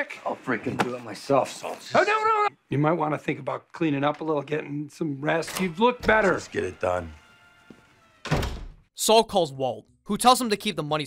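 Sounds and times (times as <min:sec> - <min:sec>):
faint background music: 0:02.7 - 0:08.6
wooden door shutting with thud: 0:08.2 - 0:08.8.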